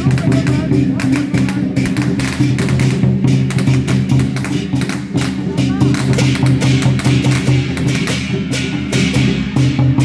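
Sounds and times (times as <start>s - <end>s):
drum: 0.0s - 10.0s
hand cymbals: 0.0s - 10.0s.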